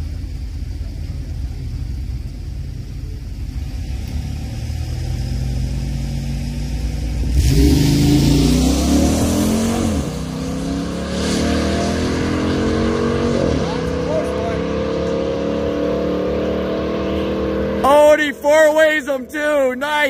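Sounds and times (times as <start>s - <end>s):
low engine rumble: 0.0s - 11.0s
car engines revving on launch: 3.2s - 19.7s.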